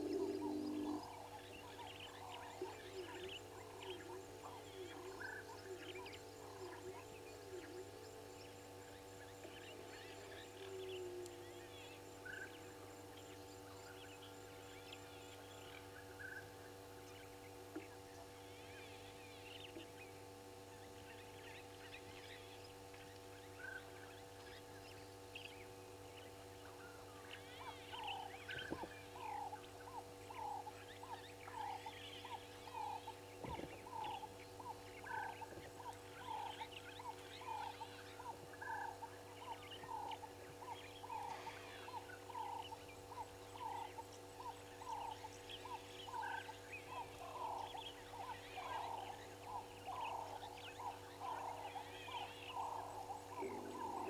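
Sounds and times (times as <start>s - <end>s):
low camera hum: 0.0s - 54.0s
bird chirps: 27.3s - 54.0s.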